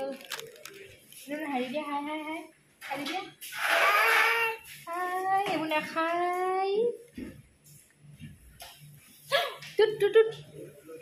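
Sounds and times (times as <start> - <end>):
toddler vocal sounds: 3.7 - 4.7
toddler shouting: 3.8 - 4.6.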